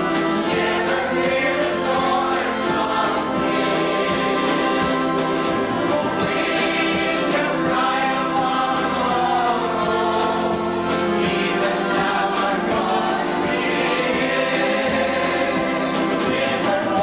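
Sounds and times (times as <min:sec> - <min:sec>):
choir singing a hymn: 0:00.0 - 0:17.0.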